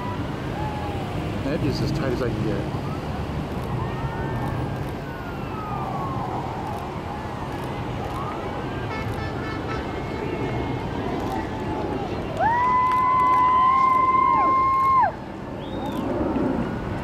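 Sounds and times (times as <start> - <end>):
jet engines rumbling overhead: 0.0 - 17.0.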